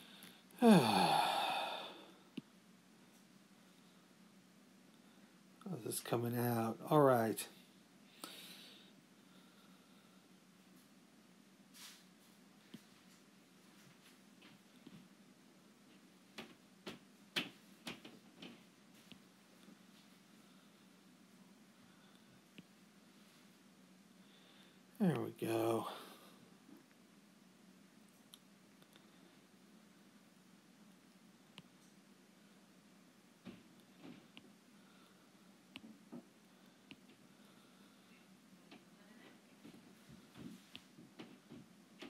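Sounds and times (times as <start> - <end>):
man sighing: 0.6 - 2.2, 25.6 - 26.4.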